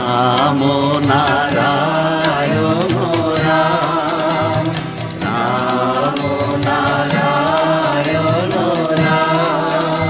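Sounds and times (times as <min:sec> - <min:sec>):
devotional chanting with accompaniment: 0:00.0 - 0:10.0.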